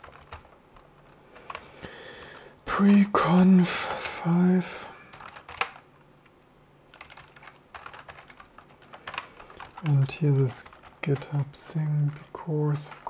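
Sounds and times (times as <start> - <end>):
computer keyboard typing: 0.0 - 3.1, 3.9 - 6.3, 6.9 - 13.0.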